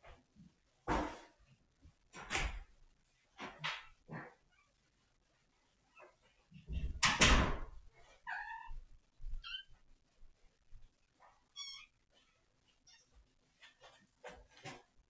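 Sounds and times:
rustling: 7.8s - 15.0s
kitten meowing: 9.4s - 9.7s, 11.5s - 11.9s.

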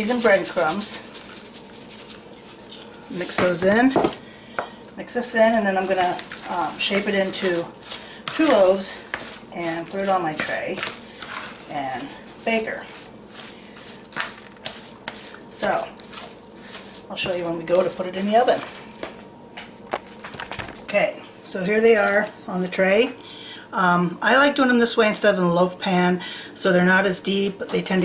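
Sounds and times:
bread crumbs rustling into bowl: 0.0s - 21.0s.

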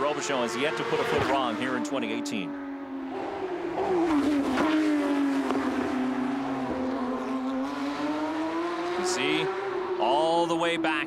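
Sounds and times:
race car engine at high revs passing: 0.0s - 11.0s.

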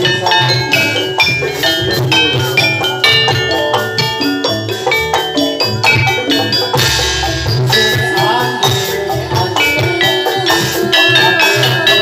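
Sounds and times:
gamelan metallophone notes: 0.0s - 12.0s
steady drum beat: 0.0s - 12.0s.

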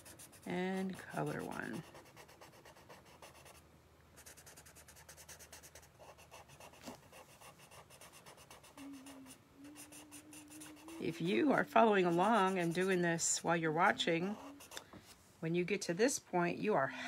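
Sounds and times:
marker scratching on paper: 0.0s - 3.6s, 4.2s - 13.4s, 14.2s - 14.8s.

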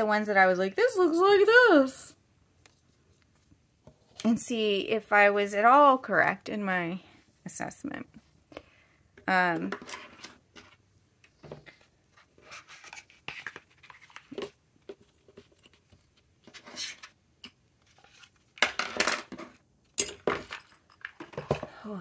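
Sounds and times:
pens clattering: 11.5s - 21.8s.

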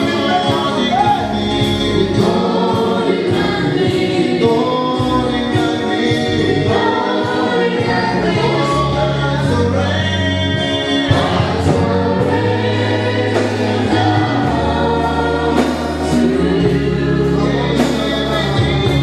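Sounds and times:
gospel choir singing: 0.0s - 19.0s
long held bass notes: 0.0s - 19.0s.

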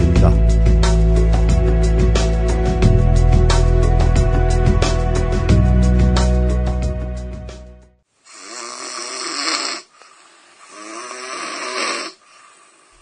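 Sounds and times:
background music: 0.0s - 8.0s
person snoring loudly: 8.3s - 13.0s.

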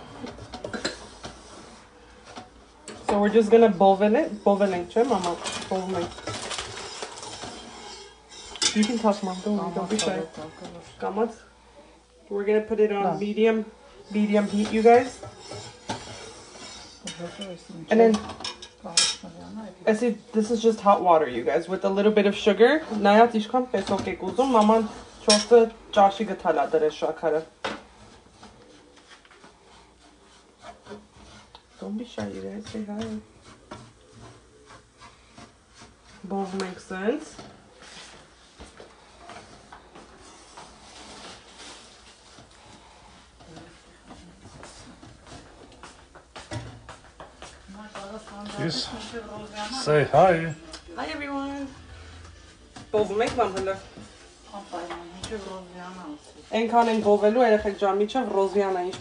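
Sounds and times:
wooden spatula scraping a pan: 0.0s - 59.0s.

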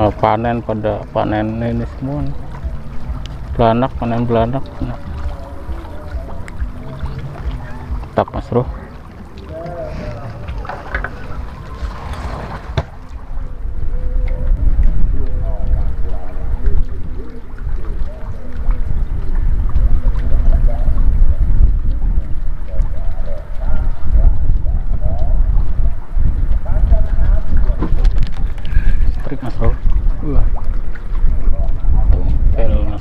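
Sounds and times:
faint voices: 0.0s - 21.4s, 22.6s - 33.0s
wind buffeting microphone: 0.0s - 33.0s.

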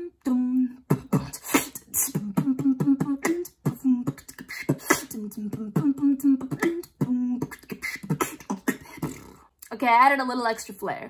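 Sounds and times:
woman beatboxing: 0.0s - 9.8s.

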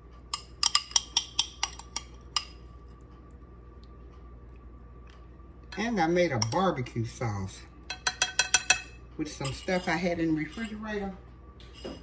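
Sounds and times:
metal spoon clinking against glass: 0.4s - 2.6s, 7.9s - 10.9s.

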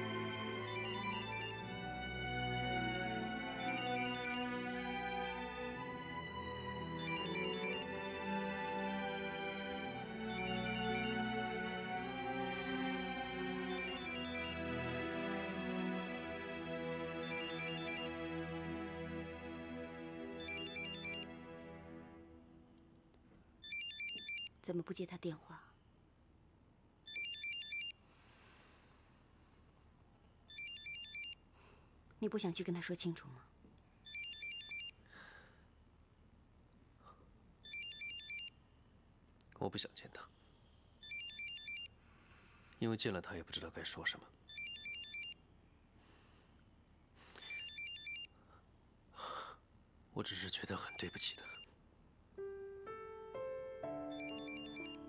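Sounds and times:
soft background music: 0.0s - 23.0s, 52.4s - 55.0s
mobile phone ringtone: 0.2s - 1.7s, 3.2s - 4.9s, 6.8s - 8.5s, 9.5s - 11.9s, 13.6s - 14.6s, 17.2s - 18.2s, 20.4s - 21.4s, 23.6s - 24.5s, 27.1s - 27.9s, 30.5s - 31.4s, 34.1s - 34.9s, 37.6s - 38.5s, 41.0s - 41.9s, 44.5s - 45.4s, 47.4s - 48.3s, 50.8s - 51.7s, 54.0s - 55.0s.

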